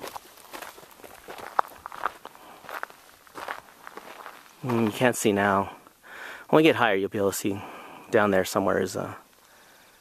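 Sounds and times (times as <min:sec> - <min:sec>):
footsteps on gravelly dirt: 0:00.0 - 0:06.0.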